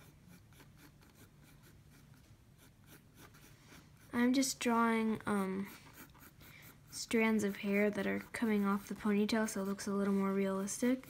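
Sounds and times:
pencil scratching on paper: 0:00.0 - 0:11.0.

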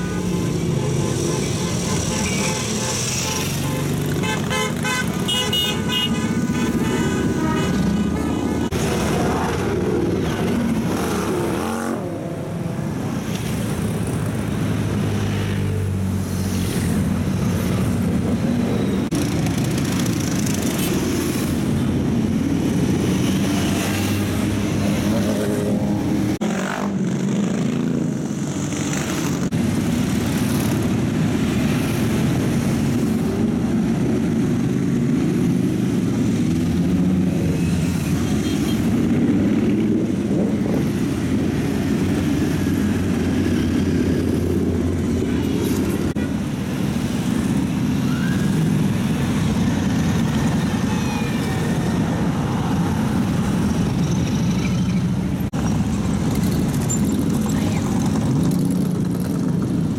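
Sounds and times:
many motorcycle engines droning: 0:00.0 - 0:59.9.

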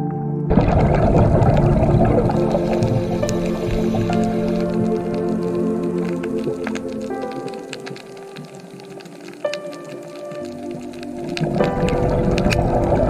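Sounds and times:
slow ambient music: 0:00.0 - 0:13.0
water sound: 0:00.5 - 0:13.0.

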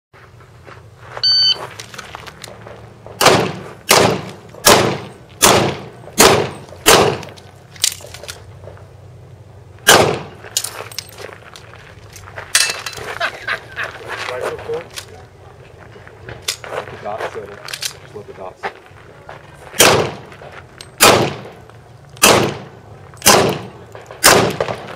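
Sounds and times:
shot timer beep: 0:01.2 - 0:01.6
pistol shots: 0:03.2 - 0:07.4, 0:09.8 - 0:10.4, 0:19.8 - 0:20.3, 0:21.0 - 0:21.6, 0:22.2 - 0:24.9.

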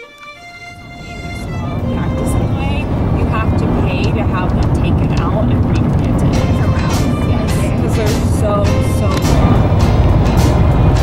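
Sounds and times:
faint music: 0:00.0 - 0:11.0
car road and wind rumble: 0:00.5 - 0:11.0
indistinct voices: 0:00.8 - 0:11.0.

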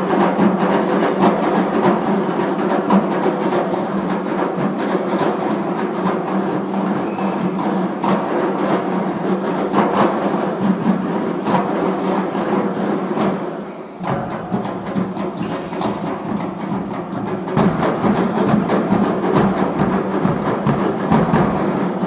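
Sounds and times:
drum ensemble playing fast rhythm: 0:00.0 - 0:22.0.

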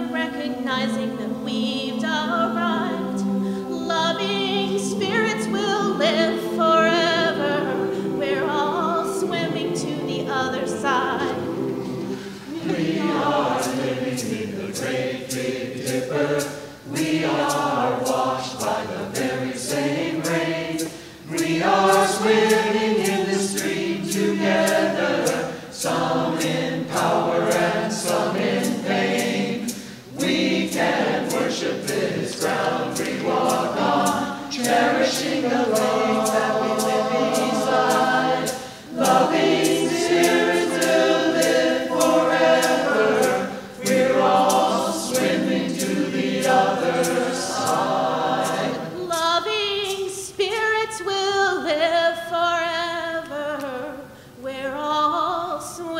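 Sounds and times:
mixed choir singing a hymn: 0:00.0 - 0:51.6.

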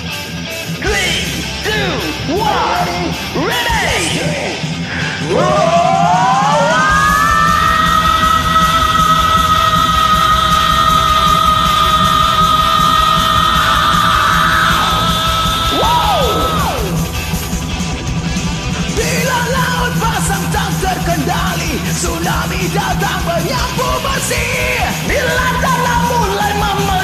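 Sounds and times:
power metal backing track: 0:00.0 - 0:27.0
men singing a high held note: 0:01.7 - 0:17.2.

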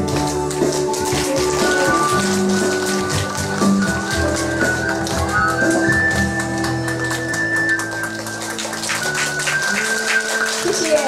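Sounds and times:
audience clapping: 0:00.0 - 0:11.0
instrumental music: 0:00.0 - 0:11.0.

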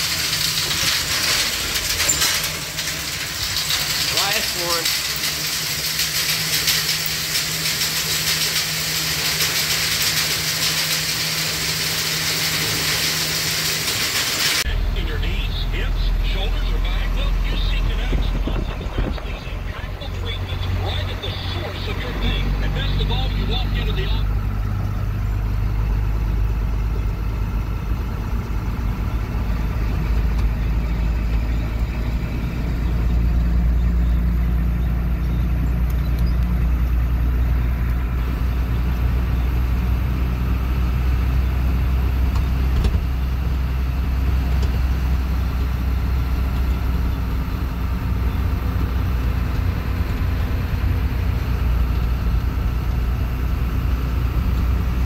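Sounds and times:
road noise: 0:00.0 - 0:55.0
truck engine running: 0:00.0 - 0:55.0.

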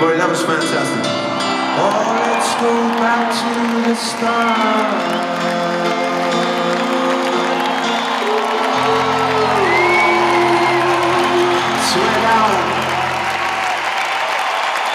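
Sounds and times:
live band sustained chords: 0:00.0 - 0:14.1
crowd cheering and whooping: 0:01.1 - 0:14.9.

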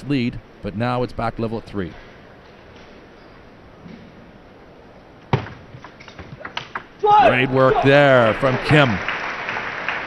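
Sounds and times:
low arena hum: 0:00.0 - 0:10.0.

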